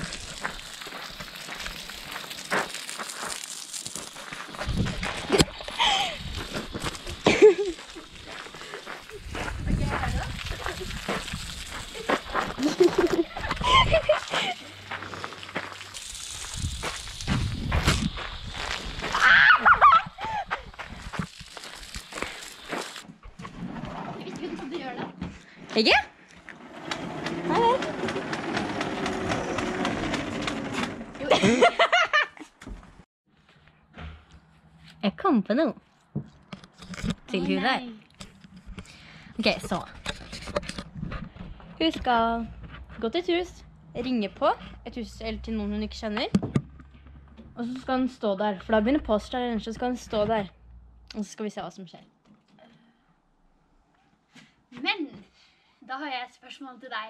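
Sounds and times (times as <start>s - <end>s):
hose water spraying: 0.0s - 23.1s
high vocal squeals: 19.1s - 20.5s.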